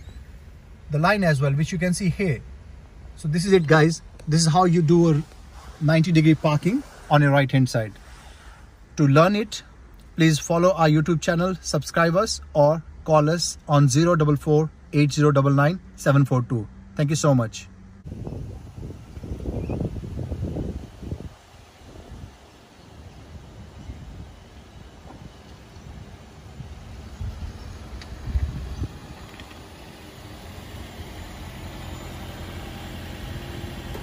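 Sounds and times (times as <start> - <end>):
wind buffeting microphone: 18.0 - 29.8.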